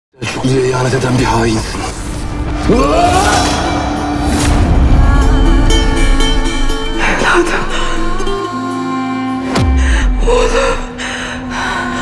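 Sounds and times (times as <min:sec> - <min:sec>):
dramatic music score: 0:00.2 - 0:12.0
deep low rumble: 0:01.8 - 0:08.4.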